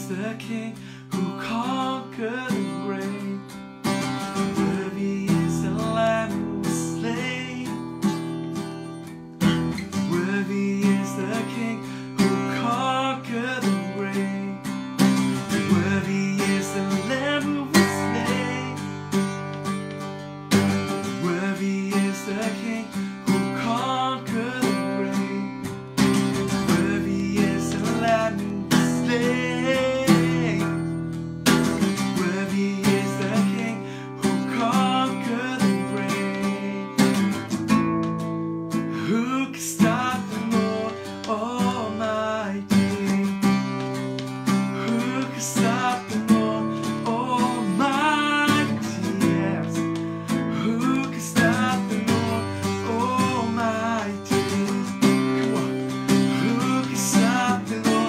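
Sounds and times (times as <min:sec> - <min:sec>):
man singing: 0:00.0 - 0:08.8, 0:09.4 - 0:19.9, 0:20.5 - 0:58.0
acoustic guitar strumming: 0:00.0 - 0:58.0.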